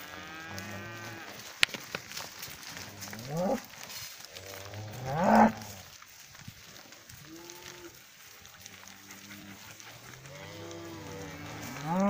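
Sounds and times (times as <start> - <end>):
cattle mooing: 4.4 - 5.7, 8.6 - 12.0.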